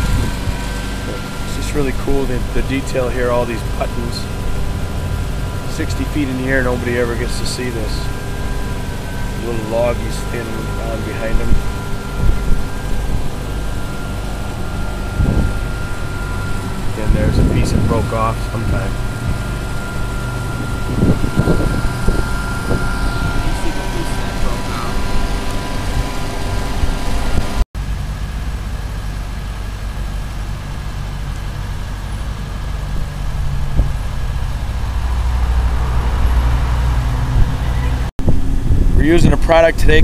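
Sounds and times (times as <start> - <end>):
low engine and traffic rumble: 0.0 - 40.0.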